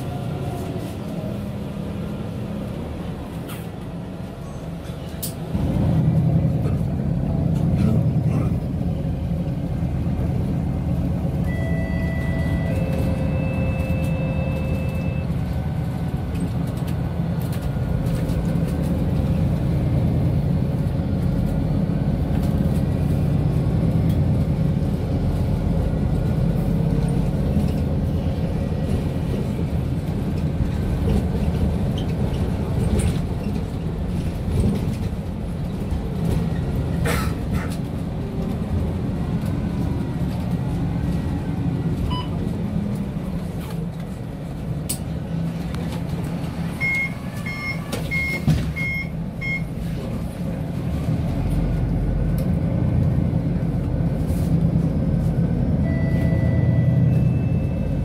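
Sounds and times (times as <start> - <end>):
bus diesel engine drone: 0.0 - 58.0.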